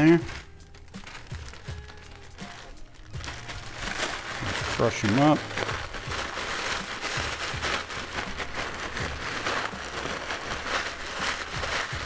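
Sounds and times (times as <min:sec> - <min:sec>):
crackers crunching: 0:00.0 - 0:12.0
plastic bag crinkling: 0:00.0 - 0:12.0.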